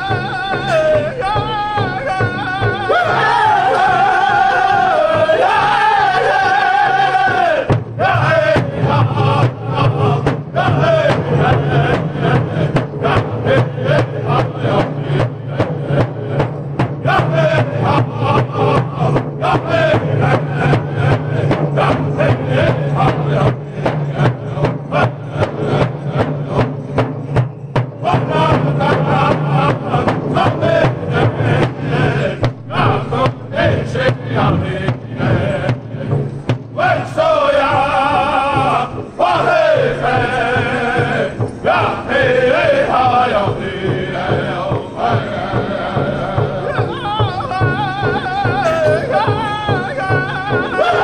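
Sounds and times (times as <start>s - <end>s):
group singing in high voices: 0.0s - 51.0s
bass drum beat: 6.9s - 51.0s.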